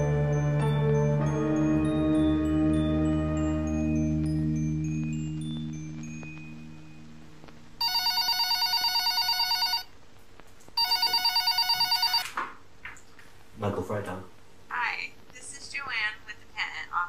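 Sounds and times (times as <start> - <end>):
telephone ringing: 7.8 - 9.9, 10.8 - 12.3.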